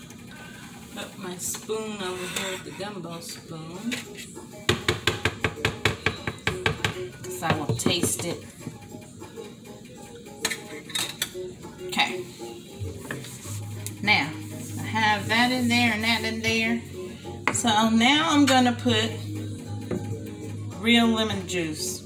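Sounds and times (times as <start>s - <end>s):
spoon scraping glass dish: 2.0s - 3.0s
person singing with music: 2.2s - 22.0s.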